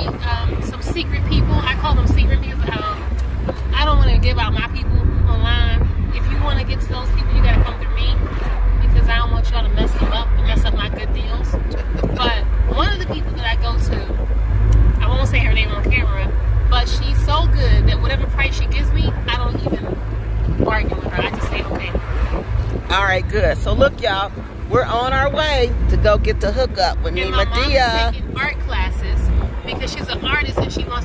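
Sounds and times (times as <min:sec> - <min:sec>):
people talking: 0:00.0 - 0:14.2, 0:15.0 - 0:22.0, 0:22.8 - 0:31.0
car engine rumble: 0:00.0 - 0:31.0
road noise: 0:00.0 - 0:31.0.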